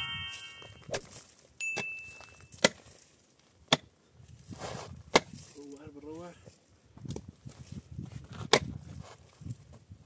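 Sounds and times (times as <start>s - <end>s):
brief high ring: 0.0s - 0.9s, 1.6s - 2.6s
pick striking stony ground: 0.0s - 3.9s, 4.6s - 5.8s, 8.3s - 9.0s.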